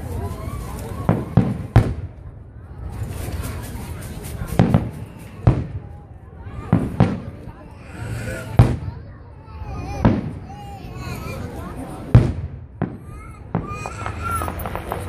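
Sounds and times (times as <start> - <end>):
crowd chatter: 0.0 - 15.0
fireworks booming: 0.8 - 3.1, 4.4 - 9.1, 9.8 - 10.9, 11.9 - 15.0.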